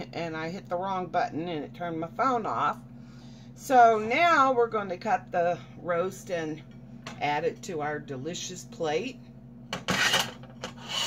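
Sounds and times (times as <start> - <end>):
plate scraping on stovetop: 9.8 - 11.0.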